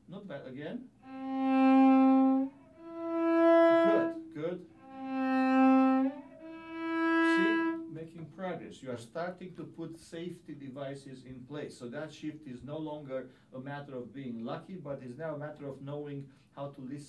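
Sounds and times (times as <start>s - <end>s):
bowed cello long notes: 1.0s - 8.3s.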